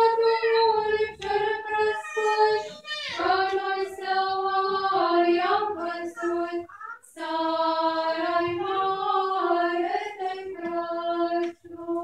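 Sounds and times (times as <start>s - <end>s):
women singing a chant together: 0.0s - 12.0s.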